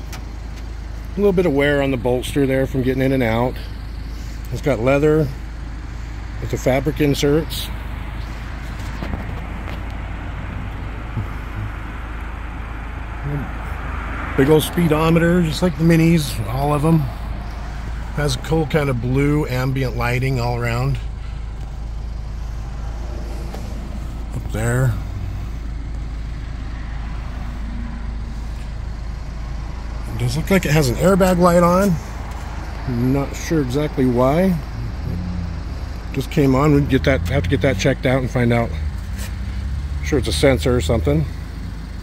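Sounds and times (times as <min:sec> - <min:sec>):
car cabin rumble and hiss: 0:00.0 - 0:39.4.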